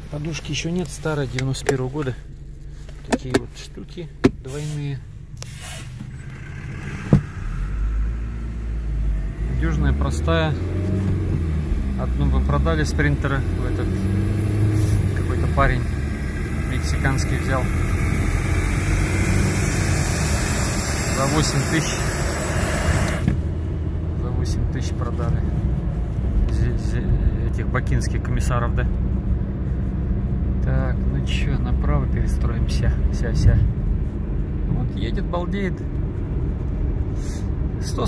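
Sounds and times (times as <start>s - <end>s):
diesel engine running: 0.0s - 34.6s
hiss: 17.6s - 23.3s.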